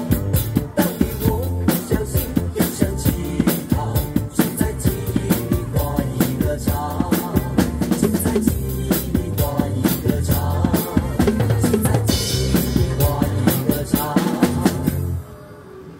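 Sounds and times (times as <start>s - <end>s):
acoustic drum kit: 0.0s - 15.2s
recorded backing track: 0.0s - 15.2s.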